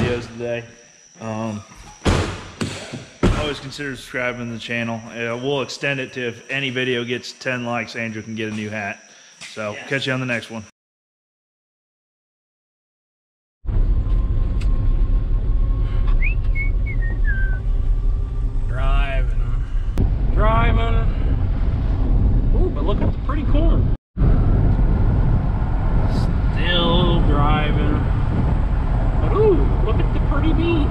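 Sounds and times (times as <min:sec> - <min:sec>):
vehicle interior rumble: 0:13.7 - 0:30.9
falling whistle-like tone: 0:15.9 - 0:17.9.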